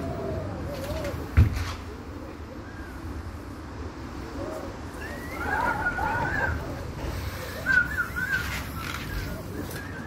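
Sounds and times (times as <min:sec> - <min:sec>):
strong wind buffeting microphone: 0:00.0 - 0:10.0
short high calls: 0:04.9 - 0:10.0.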